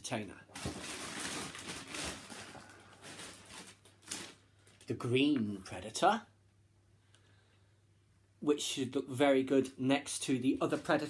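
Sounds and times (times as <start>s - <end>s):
packaging rustling: 0.5s - 4.9s.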